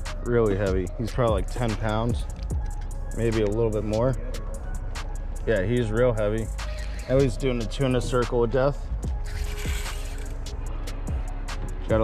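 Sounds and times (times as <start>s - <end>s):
fishing reel drag screaming: 6.6s - 7.4s, 9.2s - 10.5s.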